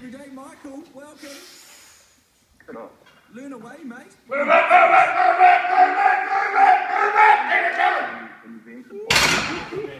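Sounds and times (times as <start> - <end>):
person yelling loudly: 4.3 - 8.2.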